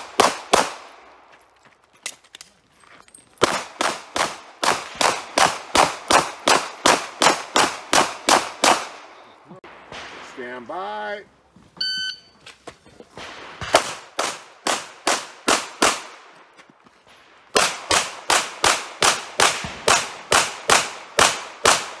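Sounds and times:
rapid handgun fire: 0.0 - 0.9, 3.4 - 9.1, 13.3 - 16.2, 17.5 - 22.0
shot timer beep: 11.8 - 12.4.

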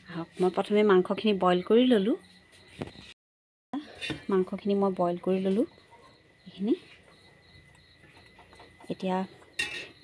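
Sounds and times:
high-pitched insect chirping: 5.6 - 10.0.

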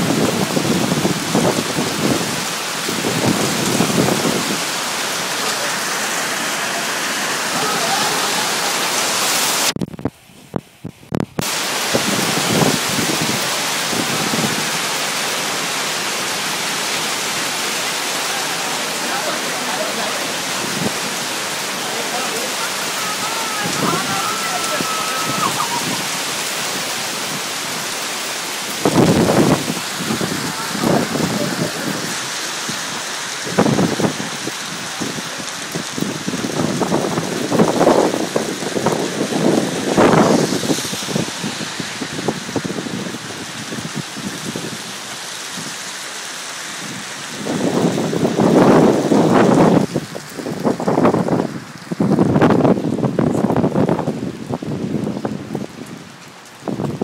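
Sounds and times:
heavy rain hissing: 0.0 - 9.8, 11.4 - 57.0
bursts of noise: 3.2 - 9.8.

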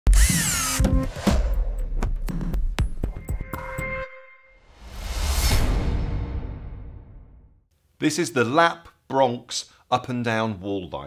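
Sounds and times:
power drill whir: 0.1 - 1.1
sharp electronic music hits: 0.2 - 7.5.

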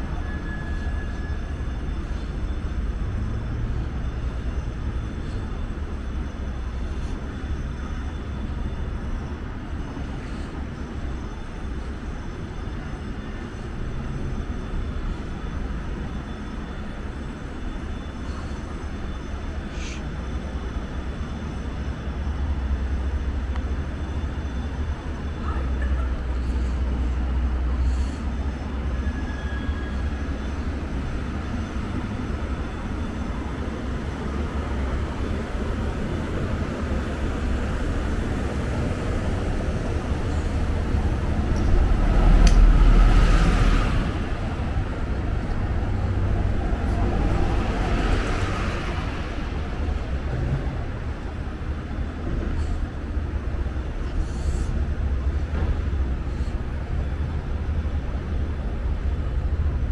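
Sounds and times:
bus approaching: 0.0 - 59.9
city traffic rumble: 0.0 - 59.9.

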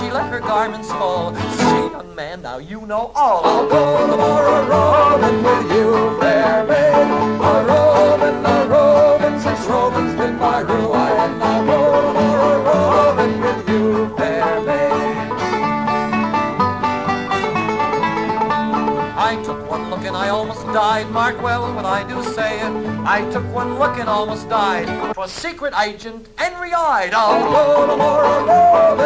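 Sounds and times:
banjo melody: 0.0 - 2.4, 3.3 - 25.4, 27.2 - 29.0
acoustic guitar accompaniment: 0.0 - 25.6, 27.1 - 29.0.

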